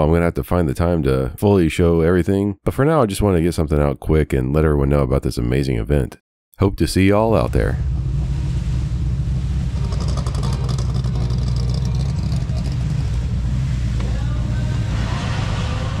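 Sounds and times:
car engine deep rumble: 7.2s - 16.0s.

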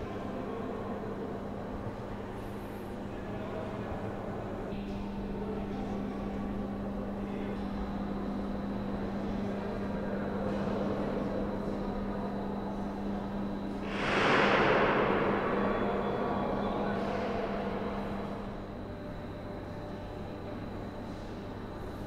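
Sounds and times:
distant murmur of visitors: 0.0s - 22.0s
rush of noise: 13.9s - 15.9s.

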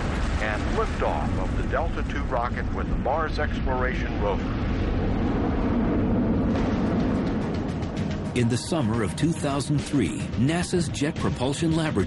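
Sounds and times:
rocket liftoff rumble: 0.0s - 9.9s.

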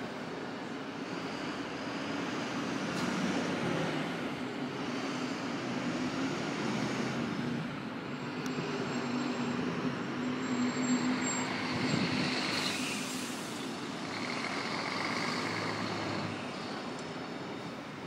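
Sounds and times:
road traffic: 0.0s - 18.0s.

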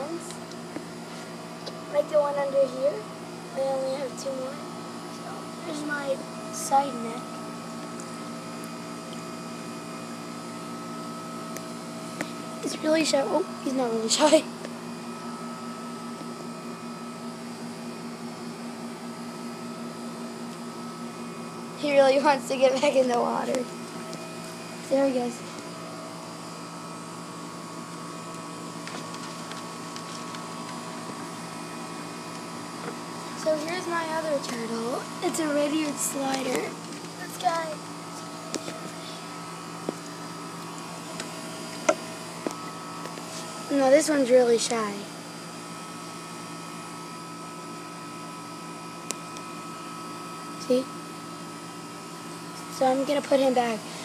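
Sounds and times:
steady machine hum: 0.0s - 54.0s.

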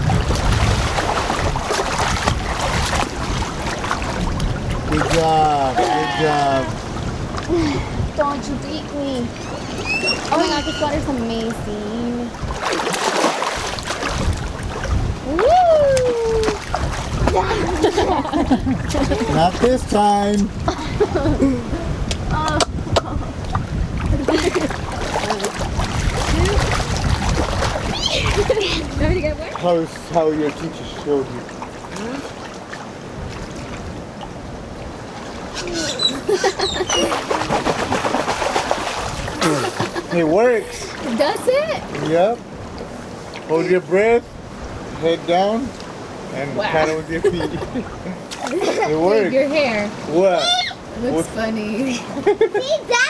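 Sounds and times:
child swimming splashes: 0.0s - 6.8s, 12.5s - 19.7s, 24.0s - 29.8s, 35.1s - 42.1s.

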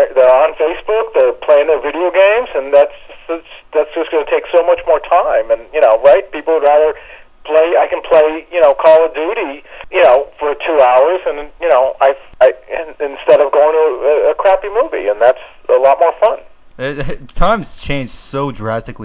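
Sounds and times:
person talking over phone line: 0.0s - 17.6s.

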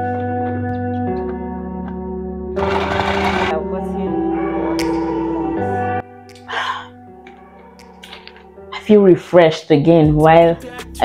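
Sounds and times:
background music: 0.0s - 11.0s
food processor chopping: 2.6s - 3.5s.

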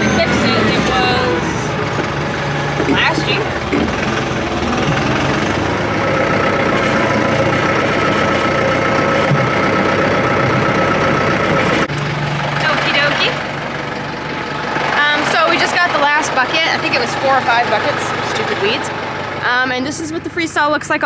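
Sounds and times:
tractor diesel engine running: 0.0s - 21.0s.

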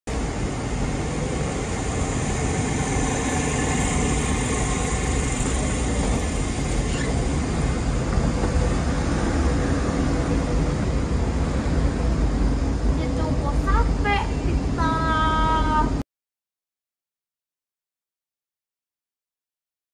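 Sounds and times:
escalator drive hum: 0.1s - 13.0s
station hall noise: 0.1s - 16.0s.

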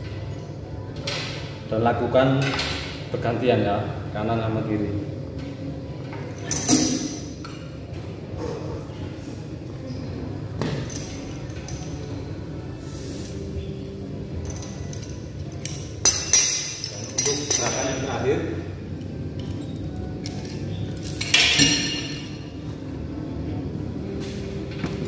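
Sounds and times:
metal attachments clinking and knocking: 14.4s - 18.2s
sharp metallic clinks: 14.4s - 18.2s.

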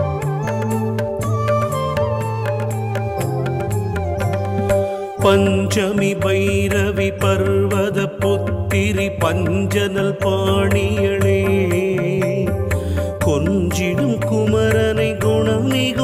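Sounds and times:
light percussion: 0.0s - 16.0s.

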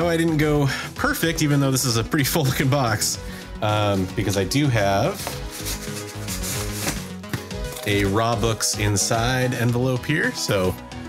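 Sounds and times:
soft background music: 0.0s - 11.0s
cardboard rustling and scraping: 5.2s - 7.5s.

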